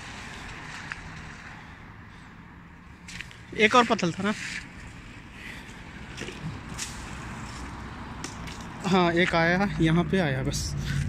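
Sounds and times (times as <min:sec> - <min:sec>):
leaves rustling: 0:00.0 - 0:02.3, 0:03.0 - 0:09.8
light clicks of pole in branches: 0:06.1 - 0:08.8.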